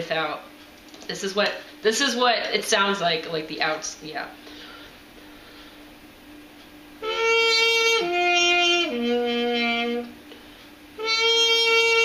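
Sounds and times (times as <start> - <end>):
muted trumpet notes: 7.0 - 10.2, 11.0 - 12.0.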